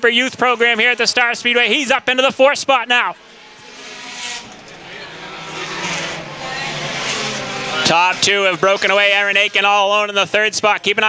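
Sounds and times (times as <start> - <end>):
race car engines at speed: 0.0 - 11.0.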